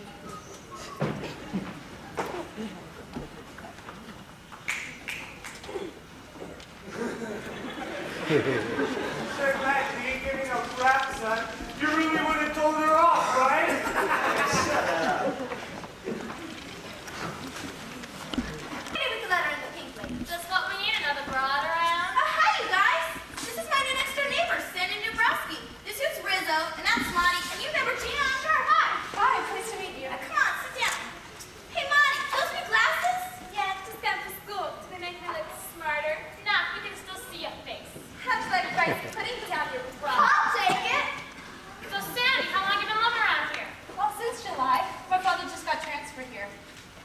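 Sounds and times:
voices: 0.0 - 46.7
footsteps on stage floor: 0.3 - 6.8, 9.4 - 13.3, 15.4 - 22.2.

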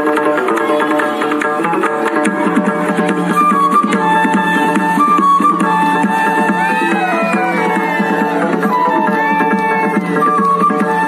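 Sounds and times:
drums beating quick rhythm: 0.0 - 11.0
reedy pipe melody: 2.1 - 11.0.

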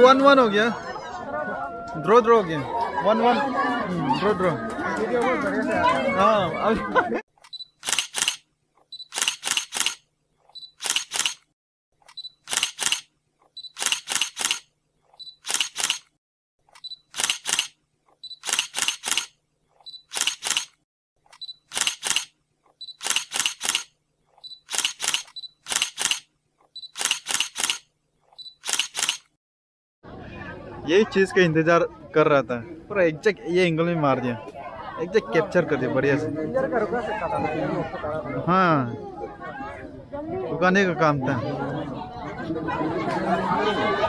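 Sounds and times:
sharp clicks: 7.4 - 10.0, 10.6 - 14.7, 15.3 - 16.1, 16.7 - 19.4, 20.0 - 29.3.

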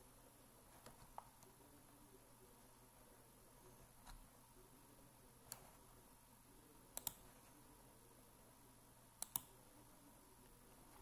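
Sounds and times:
room hiss: 0.0 - 11.0
mouse and keyboard clicks: 7.0 - 7.3, 9.2 - 9.5.

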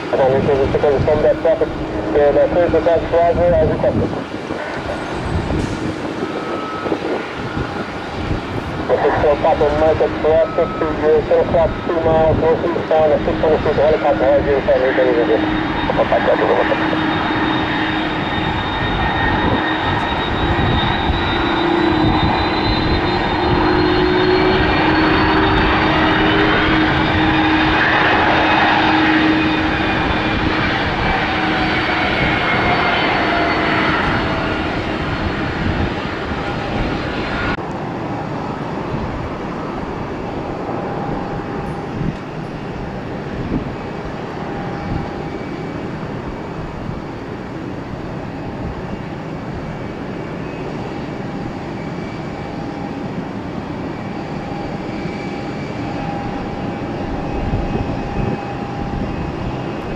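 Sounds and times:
airliner jet rumble: 0.0 - 59.9
jet engines rumbling and whining: 0.0 - 59.9.

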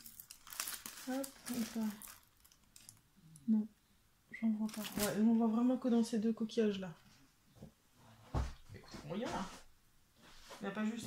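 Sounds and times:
plastic film crinkling: 0.0 - 3.0, 4.6 - 5.2.

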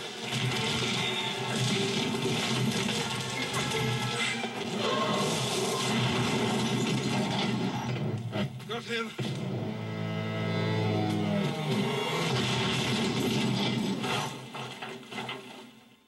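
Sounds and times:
car crashing through branches: 0.0 - 7.9, 11.5 - 15.8.

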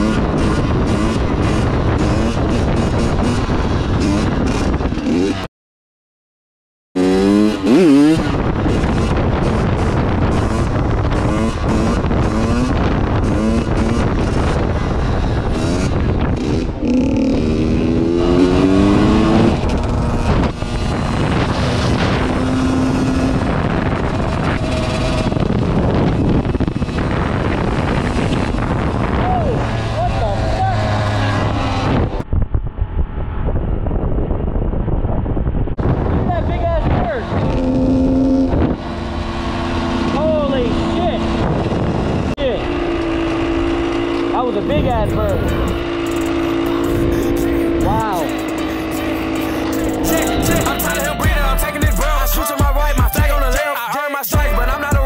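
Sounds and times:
dirt bike engine revving: 0.0 - 5.5, 7.0 - 32.2, 35.9 - 55.0
wind noise on microphone: 0.0 - 5.5, 7.0 - 55.0
music: 48.2 - 55.0.

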